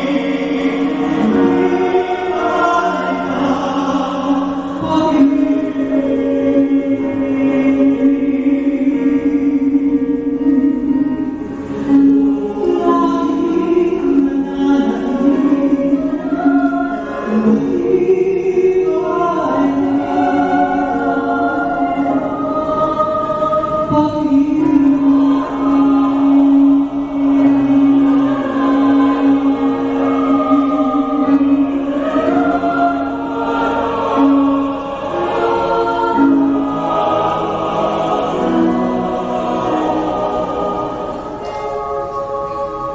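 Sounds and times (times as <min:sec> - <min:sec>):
mixed choir singing sustained chords: 0:00.0 - 0:42.9.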